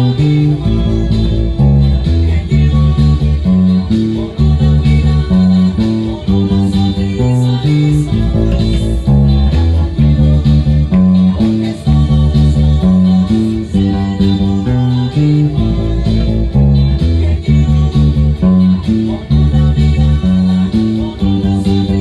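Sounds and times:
cumbia track with percussion: 0.0s - 22.0s
electric bass line: 0.0s - 22.0s.

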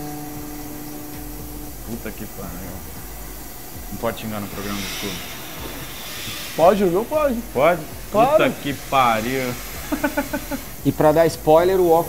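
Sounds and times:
router spindle humming: 0.0s - 12.0s.

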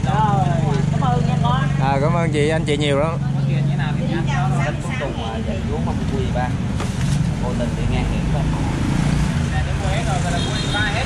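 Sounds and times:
passing traffic engine rumble: 0.0s - 11.0s.

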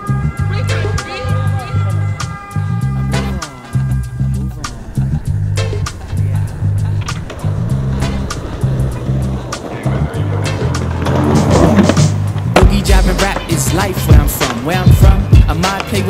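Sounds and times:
background music with bass line: 0.0s - 16.0s
skateboard wheels rolling on pavement: 0.0s - 16.0s
skateboard clacks: 7.0s - 16.0s.

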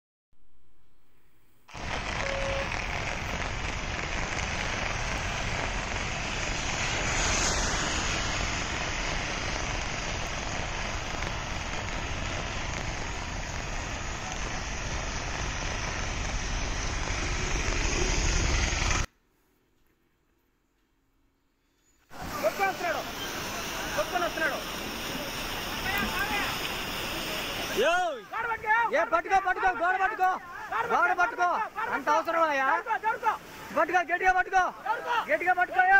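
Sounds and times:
heavy rain roaring: 1.7s - 19.1s, 22.1s - 34.2s.

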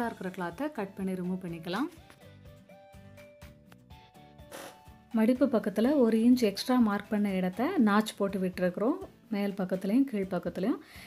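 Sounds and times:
soft background music: 0.0s - 11.0s
short rasping sound: 4.5s - 4.9s.

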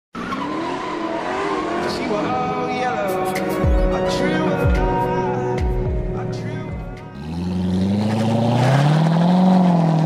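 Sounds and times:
car engine at high revs: 0.1s - 2.5s, 7.1s - 10.0s.

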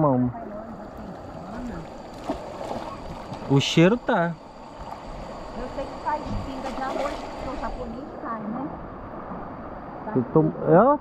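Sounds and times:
river water rushing: 0.4s - 10.1s.

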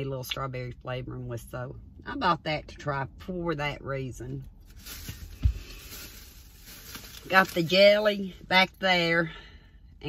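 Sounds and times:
dull low thump of shopping items: 5.1s - 6.0s.

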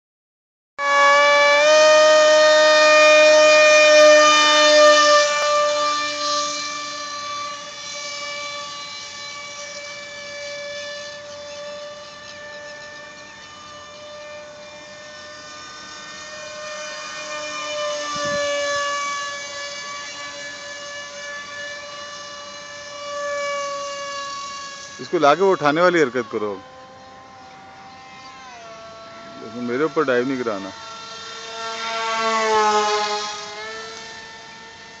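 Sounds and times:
electric motor and propeller whining: 0.8s - 35.0s.

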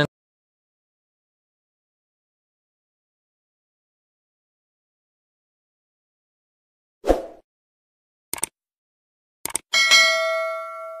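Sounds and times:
mouse double click: 9.4s - 9.6s
small bell ringing: 9.7s - 11.0s.

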